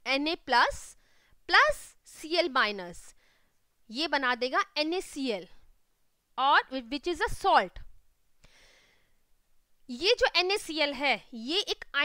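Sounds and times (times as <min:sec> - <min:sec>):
person breathing softly: 0:01.0 - 0:01.4, 0:03.1 - 0:03.6, 0:08.4 - 0:09.3.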